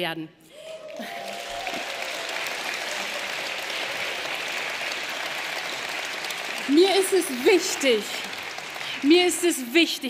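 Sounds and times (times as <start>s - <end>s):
audience applauding: 0.6s - 10.0s.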